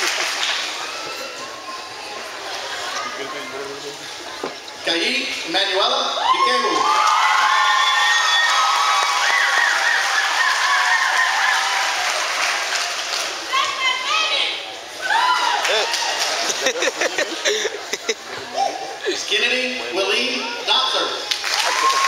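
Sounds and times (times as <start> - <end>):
audience applause: 0.0 - 0.9, 6.8 - 13.6, 15.2 - 17.6, 21.3 - 22.0
voices whooping and cheering: 6.1 - 14.2, 15.0 - 16.6, 21.4 - 22.0.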